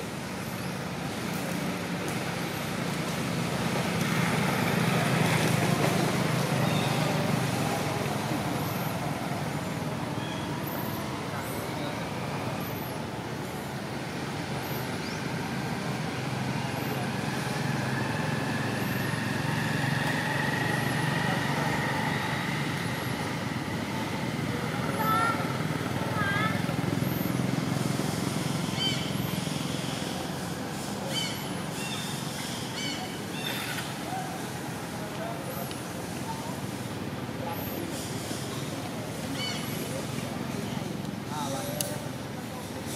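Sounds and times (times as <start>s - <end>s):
outdoor background noise: 0.0s - 42.9s.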